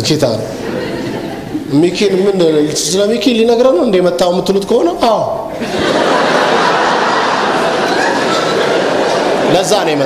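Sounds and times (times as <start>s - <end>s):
crowd laughing: 0.4s - 2.6s, 5.5s - 10.0s.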